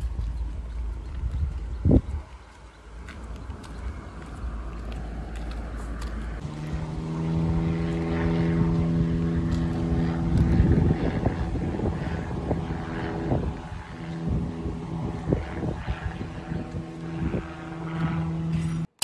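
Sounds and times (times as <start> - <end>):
propeller aircraft droning overhead: 0.0 - 19.0.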